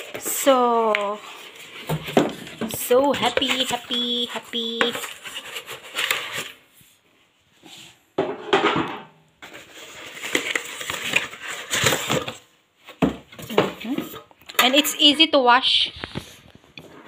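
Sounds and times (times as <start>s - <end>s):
scratchy handling noise: 0.0s - 6.8s
packaging crinkling and crumpling: 9.5s - 12.5s.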